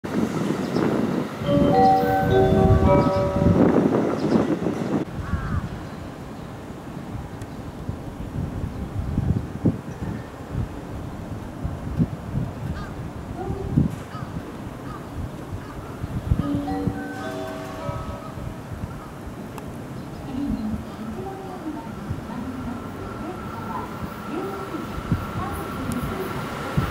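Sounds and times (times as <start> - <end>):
train approaching: 0.0 - 7.7, 14.5 - 26.9
electronic chime melody: 1.5 - 4.2, 16.5 - 18.6.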